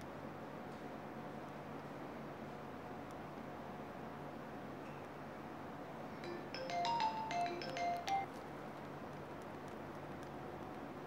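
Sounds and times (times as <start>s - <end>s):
faint room hum: 0.0s - 11.0s
electronic chime beep: 6.2s - 8.3s.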